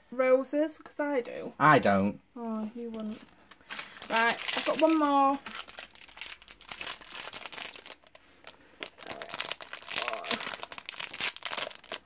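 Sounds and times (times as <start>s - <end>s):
foil wrapper crinkling: 2.8s - 12.0s.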